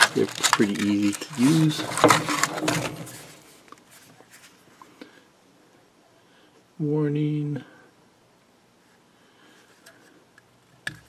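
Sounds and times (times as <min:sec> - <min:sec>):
packaging rustling and clicking: 0:00.0 - 0:04.5.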